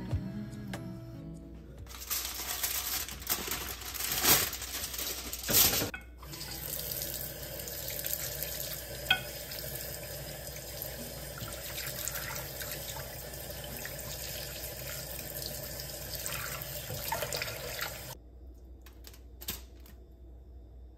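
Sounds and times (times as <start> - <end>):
aluminium foil crinkling: 1.9 - 5.9.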